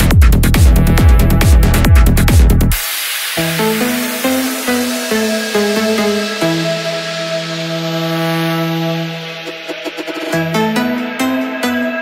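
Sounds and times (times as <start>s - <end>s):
synthesizer chord held: 2.8s - 12.0s.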